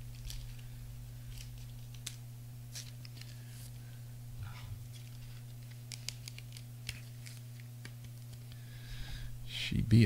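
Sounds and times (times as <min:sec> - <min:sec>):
steady low hum: 0:00.0 - 0:10.0
trading cards sliding: 0:00.1 - 0:04.0, 0:04.8 - 0:08.7.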